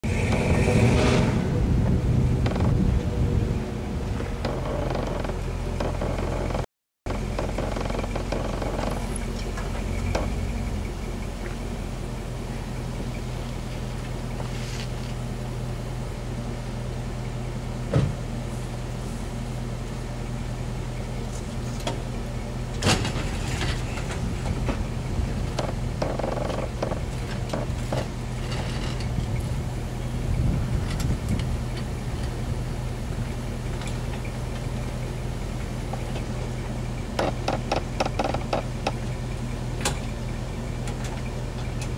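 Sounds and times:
car engine idling: 0.0s - 41.9s.

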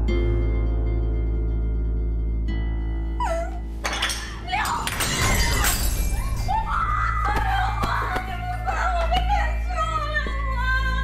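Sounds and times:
dramatic background music: 0.0s - 11.0s
fragments scattering: 3.8s - 8.5s
loud crash of breaking: 4.0s - 6.6s.

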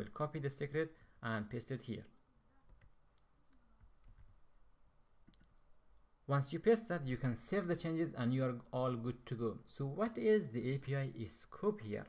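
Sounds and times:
keyboard and mouse clicks: 2.1s - 4.4s, 5.2s - 5.6s.

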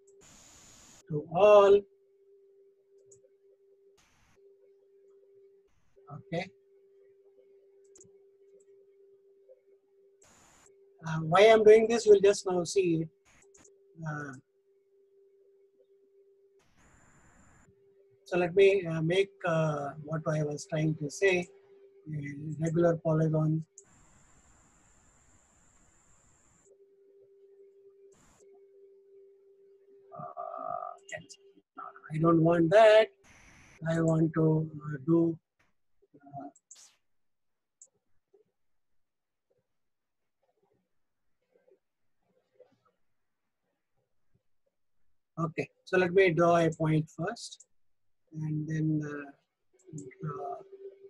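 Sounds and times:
faint steady hum: 0.0s - 37.0s, 41.3s - 51.0s
computer mouse click: 13.3s - 13.8s.

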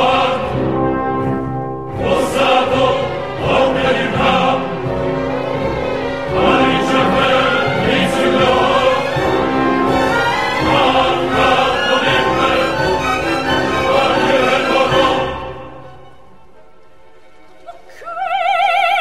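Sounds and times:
operatic chorus singing: 0.0s - 16.6s
orchestra playing: 0.0s - 17.9s.

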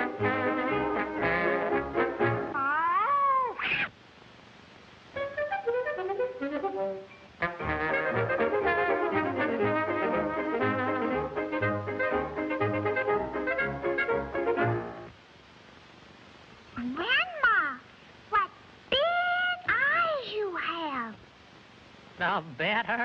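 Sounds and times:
brass-led cartoon orchestra music: 0.0s - 2.6s, 5.2s - 15.1s
cartoon cat yowl: 2.5s - 4.0s.

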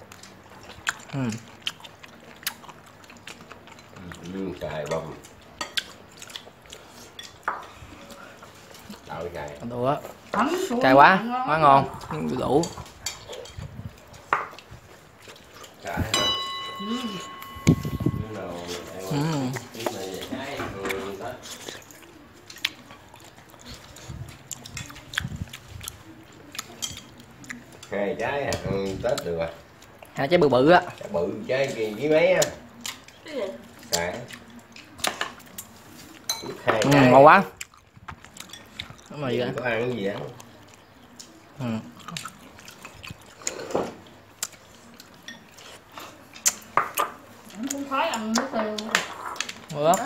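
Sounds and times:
chopsticks and bowls clinking: 2.4s - 9.7s, 12.0s - 29.6s, 33.8s - 37.2s, 38.2s - 41.4s, 42.0s - 47.2s
person speaking: 15.9s - 21.5s.

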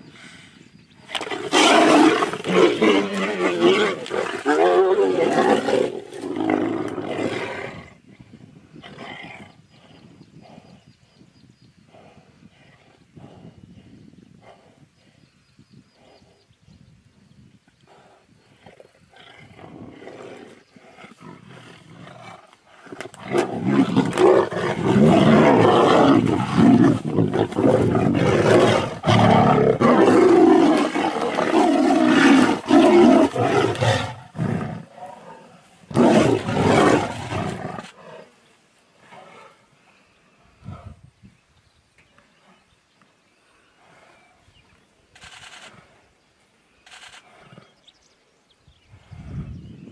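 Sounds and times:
tigers roaring: 1.1s - 7.9s, 19.2s - 38.4s.

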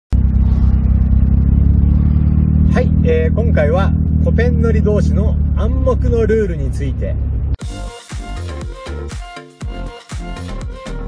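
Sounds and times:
car engine droning: 0.1s - 7.6s.

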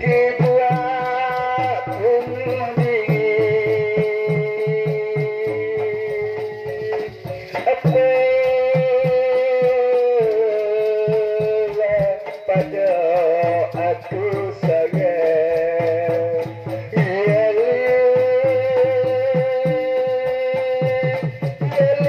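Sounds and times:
drum strokes: 0.0s - 22.0s
small cymbals clinking: 0.0s - 22.0s.

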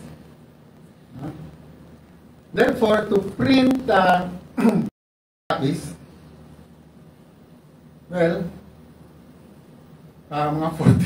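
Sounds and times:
faint low hum: 0.0s - 4.9s, 5.5s - 11.0s.

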